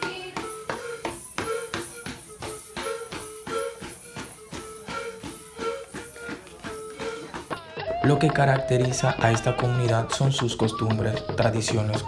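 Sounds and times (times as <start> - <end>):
drum beating steady pulse: 0.0 - 12.0.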